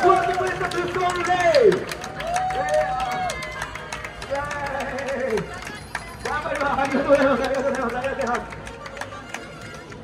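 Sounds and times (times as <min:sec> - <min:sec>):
voices whooping: 0:02.2 - 0:04.0.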